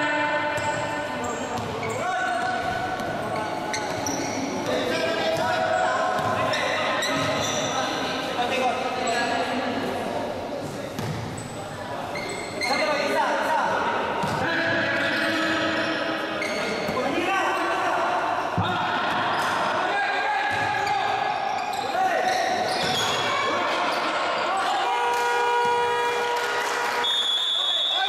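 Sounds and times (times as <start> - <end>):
people calling out in a gymnasium: 0.0 - 9.9, 11.4 - 28.0
players and spectators shouting: 17.2 - 27.1.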